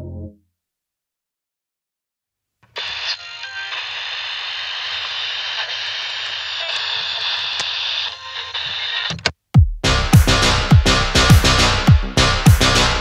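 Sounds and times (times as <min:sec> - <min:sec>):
steady hiss: 0:02.7 - 0:09.2.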